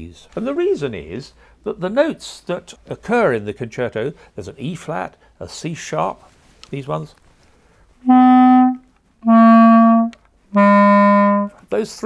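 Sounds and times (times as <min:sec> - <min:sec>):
clarinet low held notes: 0:08.0 - 0:11.6.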